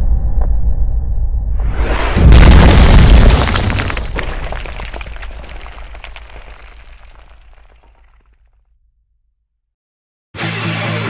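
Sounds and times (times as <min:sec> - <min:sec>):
deep rumble: 0:00.0 - 0:08.0
crackling debris: 0:01.8 - 0:08.4
heavy boom impact: 0:02.1 - 0:06.4.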